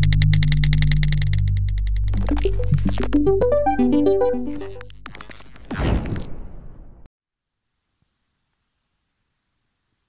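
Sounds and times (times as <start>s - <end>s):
fast electronic ticking: 0.0s - 5.0s
low synthesizer drone: 0.0s - 5.0s.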